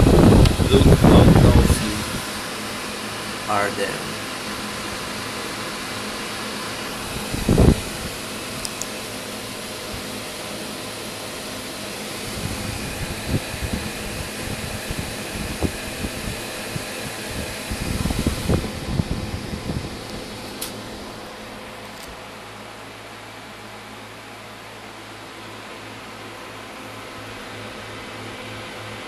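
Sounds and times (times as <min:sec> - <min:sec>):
computer fans humming: 0:00.0 - 0:29.0.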